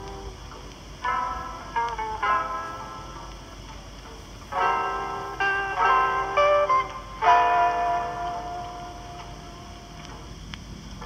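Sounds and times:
faint clicks: 0.0 - 2.4, 8.2 - 11.0
guitar chord ringing: 0.0 - 3.7, 4.5 - 10.4
tape hiss: 0.0 - 11.0.

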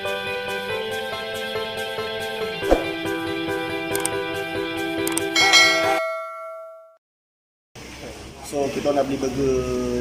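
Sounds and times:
bell chime: 5.4 - 7.0.

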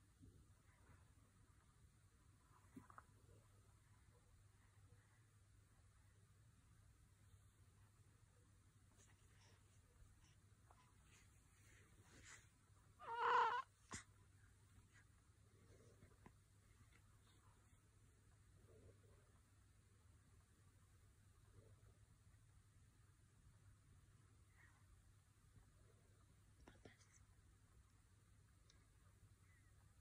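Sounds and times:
low steady hum: 0.0 - 30.0.

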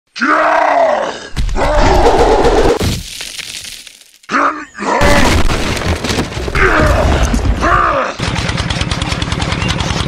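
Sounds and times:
person grunting with effort: 0.2 - 2.8, 6.5 - 8.2.

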